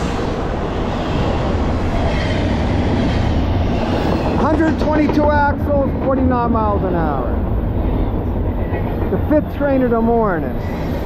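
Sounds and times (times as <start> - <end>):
freight train wheels rumbling: 0.0 - 11.0.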